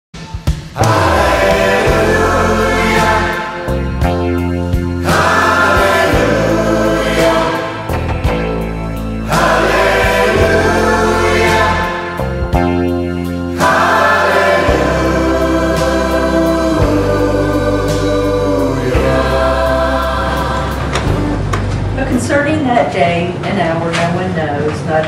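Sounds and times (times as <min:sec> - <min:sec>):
choir singing held chords: 0:00.8 - 0:22.0
low accompaniment: 0:00.8 - 0:22.6.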